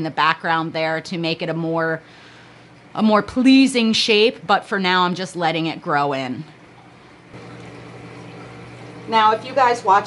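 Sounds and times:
steady low hum: 0.0s - 10.0s
water trickling: 6.0s - 10.0s.

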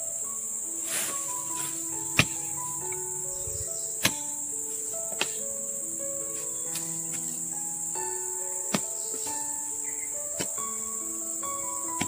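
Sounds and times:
insect chorus: 0.0s - 12.0s
slow background music: 0.0s - 12.0s
bamboo pole knocking on ground: 1.0s - 3.0s, 4.0s - 4.4s, 5.1s - 5.4s.

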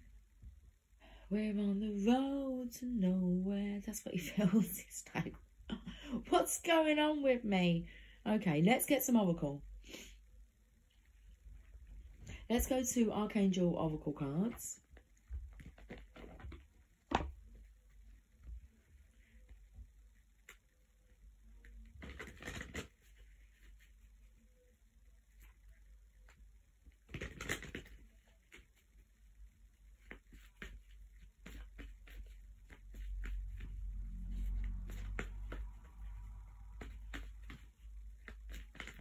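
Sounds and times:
cards clicking and rustling: 22.0s - 23.0s, 27.1s - 28.0s, 36.7s - 39.0s
low rumble of movement: 31.6s - 39.0s.

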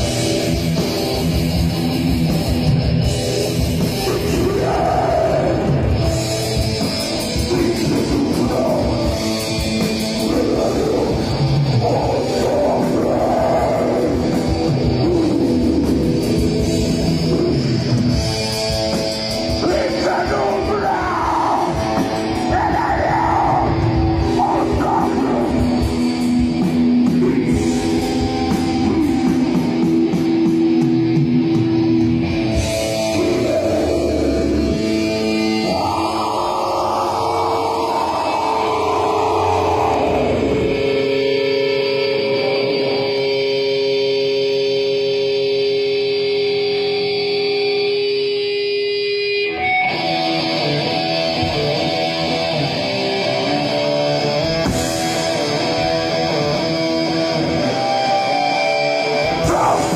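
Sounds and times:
metal band playing live: 0.0s - 59.9s.

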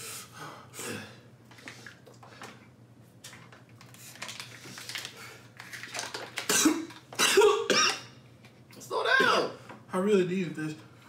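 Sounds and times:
man coughing: 6.5s - 8.1s.

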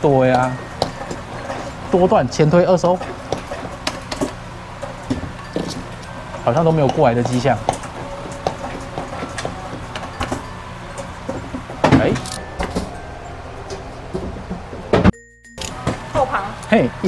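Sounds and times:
background music: 4.4s - 17.0s.

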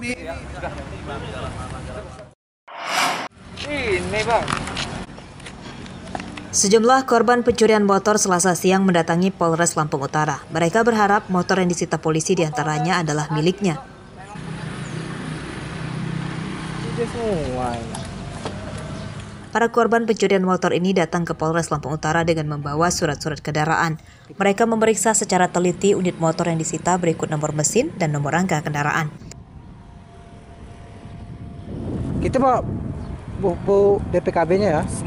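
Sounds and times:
outdoor background noise: 0.0s - 35.0s
vehicle engine humming: 14.1s - 21.6s, 24.6s - 31.9s.

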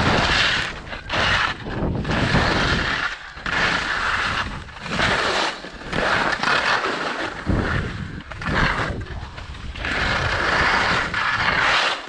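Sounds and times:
skis scraping through snow: 0.0s - 12.0s.

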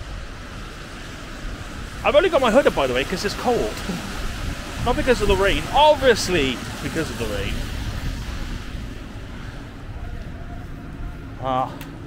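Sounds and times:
hiss of wet street: 0.0s - 10.8s
wind rumbling on microphone: 0.0s - 12.0s.

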